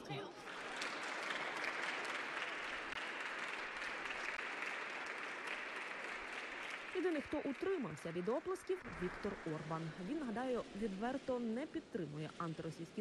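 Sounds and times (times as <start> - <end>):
group of people clapping: 0.0 - 11.1.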